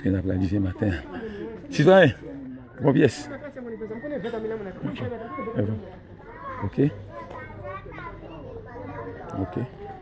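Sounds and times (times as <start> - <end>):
children's voices: 4.8 - 10.0.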